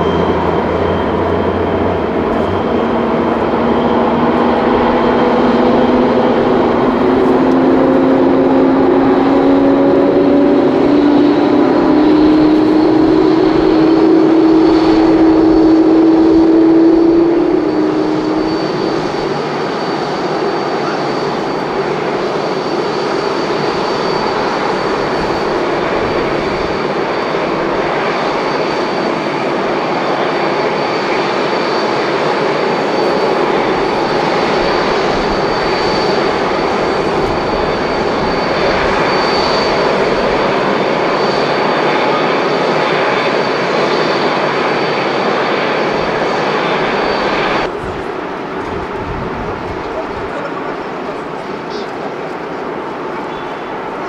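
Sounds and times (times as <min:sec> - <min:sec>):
jet engines running: 0:00.0 - 0:54.0.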